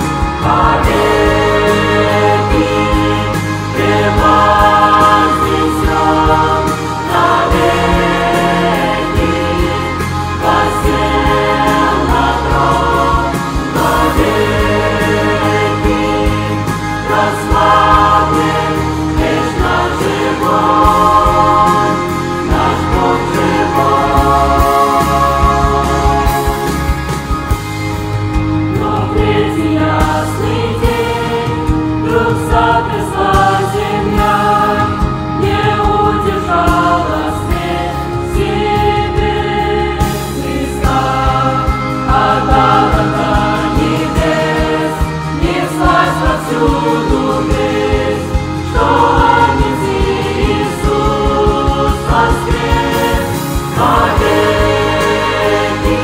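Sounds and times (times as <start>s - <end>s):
youth choir singing a hymn: 0.0s - 56.0s.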